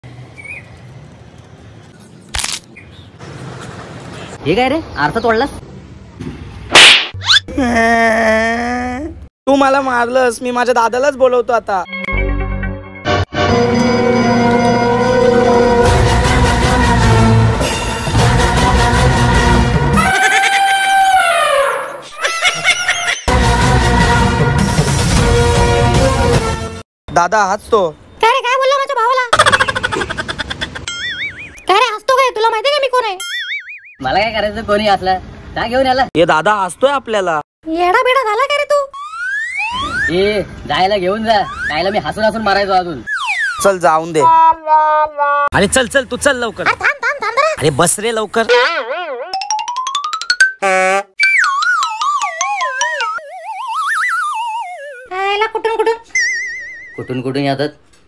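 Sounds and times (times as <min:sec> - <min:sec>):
slap across the face: 0:06.7 - 0:07.2
background music: 0:11.9 - 0:20.1, 0:23.3 - 0:26.8
wail of pain: 0:20.0 - 0:22.0
comic boing sound effect: 0:33.2 - 0:34.0, 0:39.0 - 0:40.1, 0:48.6 - 0:55.1, 0:56.1 - 0:57.1
high-pitched cartoon voice: 0:44.2 - 0:45.5, 0:48.5 - 0:49.6, 0:55.1 - 0:56.2.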